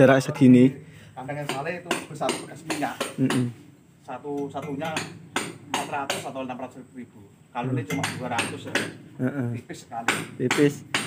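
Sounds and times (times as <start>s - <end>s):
men talking: 0.0s - 5.1s, 5.7s - 10.9s.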